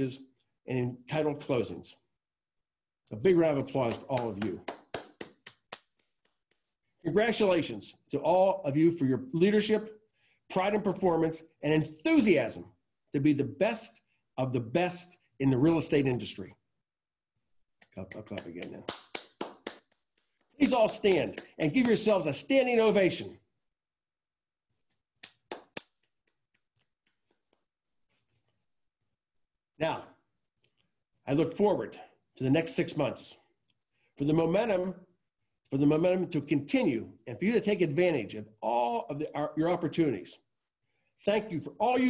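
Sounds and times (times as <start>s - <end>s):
man clapping hands: 3.6s - 6.7s, 17.8s - 22.2s, 25.2s - 26.4s.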